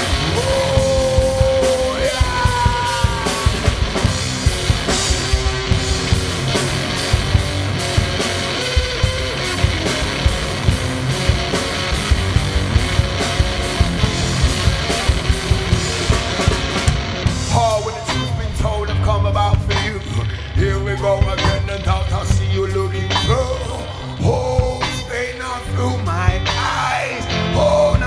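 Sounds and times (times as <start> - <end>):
person singing: 0.0 - 4.1, 17.4 - 28.0
drum kit driving beat: 0.0 - 27.0
distorted electric guitar: 0.0 - 28.0.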